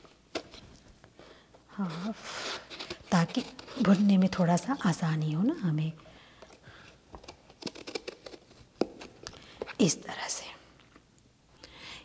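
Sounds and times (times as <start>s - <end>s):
knife cutting eggplant: 7.2s - 9.2s.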